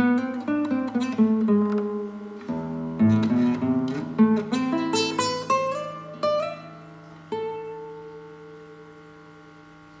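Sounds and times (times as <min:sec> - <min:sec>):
acoustic guitar notes ringing: 0:00.0 - 0:09.6
low electrical hum: 0:00.0 - 0:10.0.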